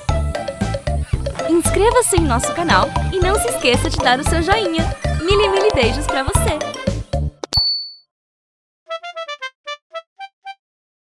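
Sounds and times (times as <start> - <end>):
children's song: 1.4 - 6.9
plinking keyboard melody: 1.8 - 6.8
cartoon notification bell ding: 5.3 - 6.3, 7.5 - 8.0.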